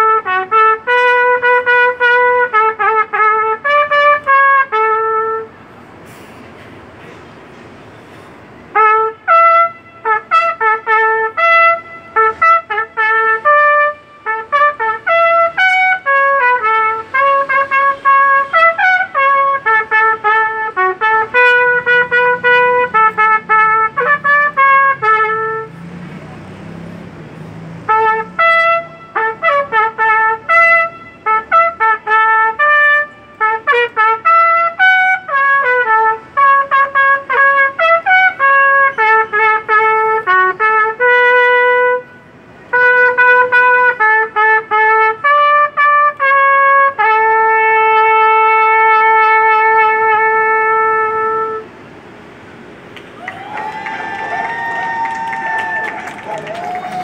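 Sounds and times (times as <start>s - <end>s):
solo trumpet melody: 0.0s - 5.7s, 8.7s - 25.9s, 27.8s - 51.8s.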